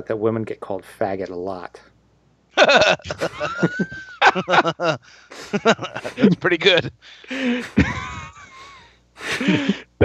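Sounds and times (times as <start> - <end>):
men laughing: 2.6 - 10.0.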